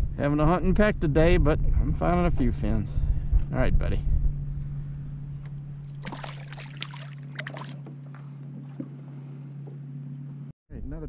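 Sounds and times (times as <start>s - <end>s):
boat motor humming: 0.0s - 10.5s
water splashing: 5.8s - 9.6s.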